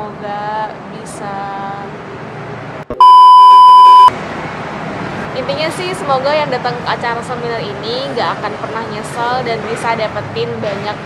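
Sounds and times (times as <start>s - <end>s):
high electronic bleep: 2.9s - 4.1s.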